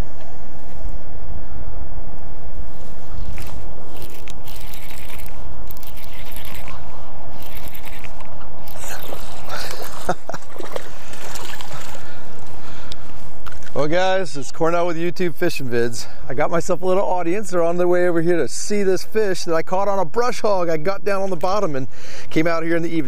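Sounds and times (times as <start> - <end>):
fish splashing in water: 4.0 - 6.8, 7.4 - 12.2.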